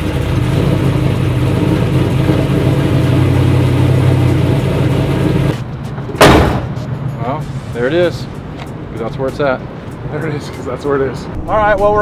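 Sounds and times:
engine running steadily: 0.0 - 10.1.

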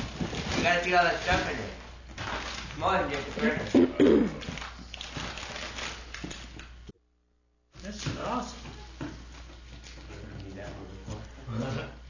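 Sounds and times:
wrapping paper rustling: 0.0 - 3.8, 4.4 - 6.8.

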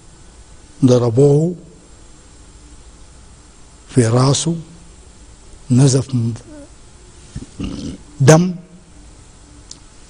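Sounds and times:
man speaking: 5.7 - 6.7, 7.6 - 8.7.

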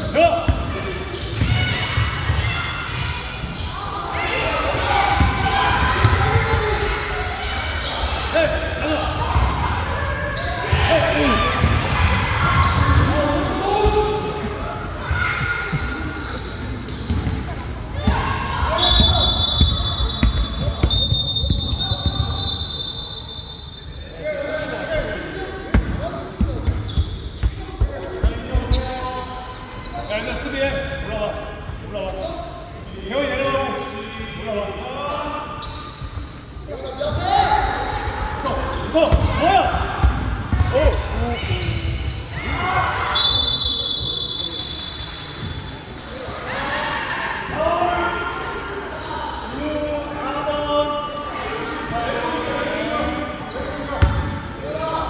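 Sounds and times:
voices calling out in a hall: 0.0 - 55.0
referee's whistle: 18.7 - 24.1, 43.0 - 45.8.

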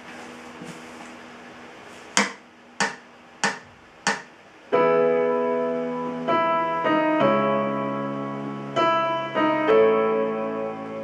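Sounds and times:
sharp count-in clicks: 2.2 - 4.3
digital piano chord: 4.7 - 11.0.

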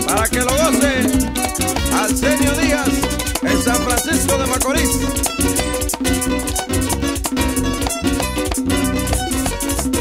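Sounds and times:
bass: 0.0 - 10.0
drums: 0.0 - 10.0
guira scraping: 0.0 - 10.0
lead guitar line: 0.0 - 10.0.

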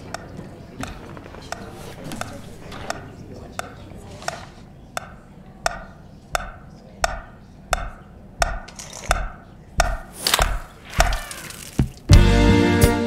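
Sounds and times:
metronome ticking: 5.0 - 11.2.

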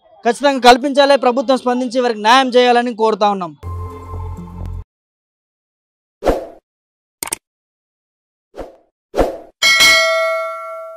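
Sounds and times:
bright bell-like ding: 9.6 - 10.9.

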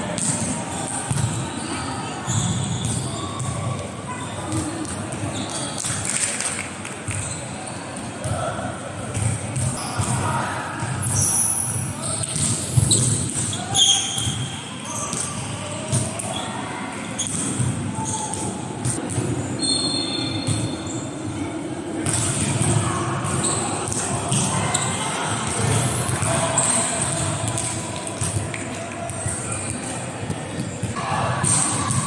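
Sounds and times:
players' voices echoing: 0.0 - 32.0
sports hall rumble: 0.0 - 32.0.

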